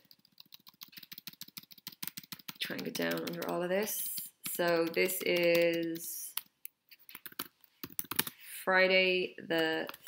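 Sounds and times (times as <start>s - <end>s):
rapid computer clicks: 0.0s - 3.7s, 4.4s - 6.5s, 7.1s - 8.3s.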